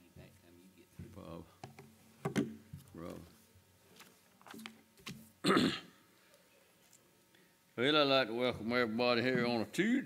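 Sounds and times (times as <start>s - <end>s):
man clearing his throat: 5.4s - 6.0s
man speaking: 7.8s - 10.0s.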